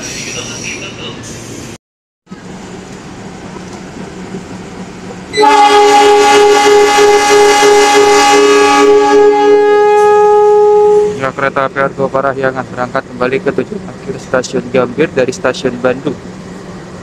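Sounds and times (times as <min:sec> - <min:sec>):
locomotive horn chord: 0:05.3 - 0:11.3.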